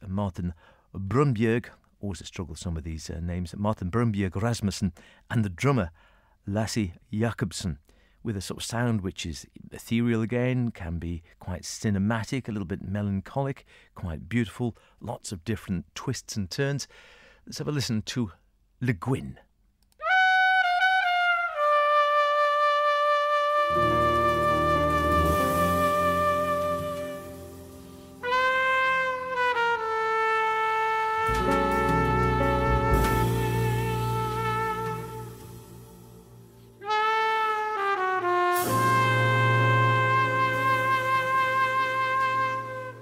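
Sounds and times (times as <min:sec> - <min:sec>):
solo trumpet: 0:20.0 - 0:43.0
lower instruments playing: 0:23.6 - 0:29.7, 0:31.2 - 0:43.0
deep sustained bass tone: 0:31.3 - 0:36.8.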